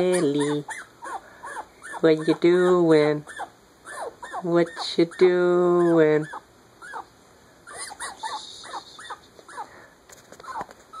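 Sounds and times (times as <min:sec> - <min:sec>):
fox whimpering calls: 0:00.0 - 0:07.1, 0:07.7 - 0:09.7.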